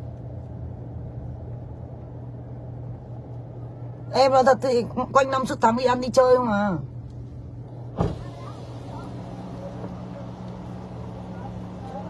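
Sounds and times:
car cabin hum: 0.0s - 12.0s
hiss of outside noise: 7.7s - 12.0s.

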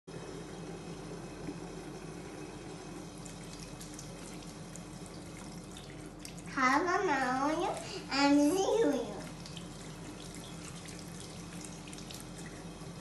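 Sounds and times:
tap water running into sink: 0.1s - 13.0s
light water splashes: 3.1s - 13.0s.

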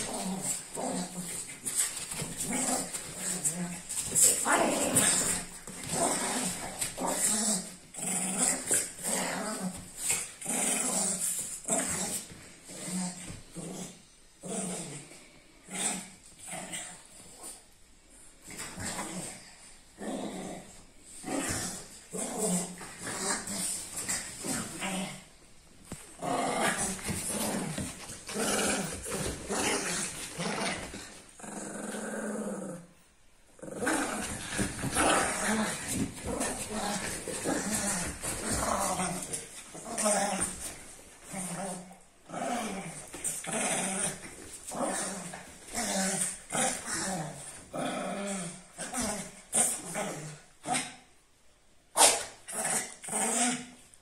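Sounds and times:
dogs growling: 0.0s - 17.6s, 25.9s - 32.9s, 33.6s - 51.0s.

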